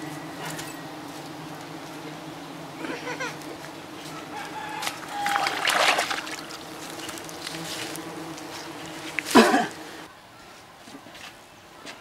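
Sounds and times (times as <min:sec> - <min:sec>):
bees buzzing: 0:00.0 - 0:10.1.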